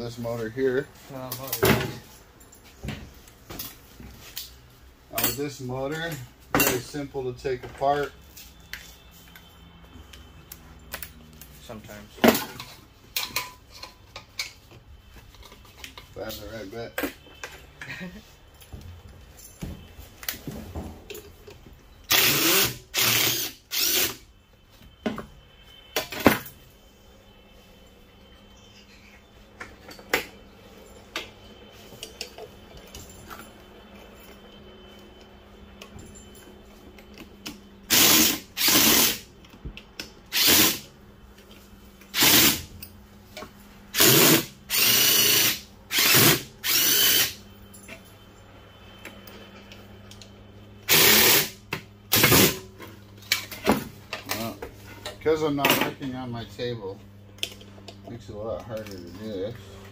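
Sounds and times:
cordless drill short bursts: 22.1s - 24.2s, 37.9s - 39.3s, 40.3s - 40.8s, 42.1s - 42.7s, 44.0s - 47.4s, 50.9s - 52.6s.

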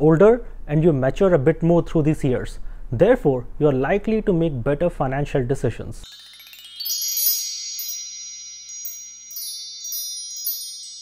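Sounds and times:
bell-like chimes ringing: 6.0s - 11.0s.

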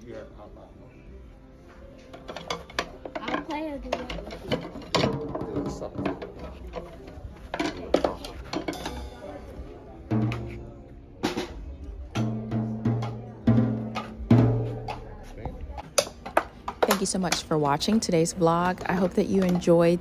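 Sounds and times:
drum kit hits: 10.1s - 15.0s.

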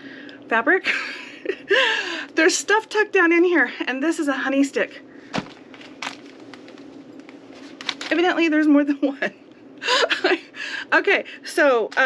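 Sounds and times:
quiet room hiss: 0.0s - 12.0s.

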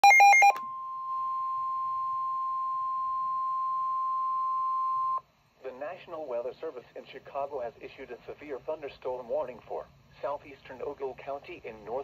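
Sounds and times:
weather alert alarm tone: 0.0s - 5.2s.

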